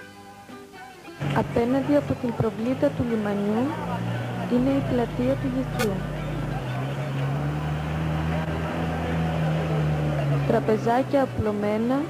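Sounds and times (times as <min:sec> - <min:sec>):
low motor hum: 0:01.2 - 0:12.0.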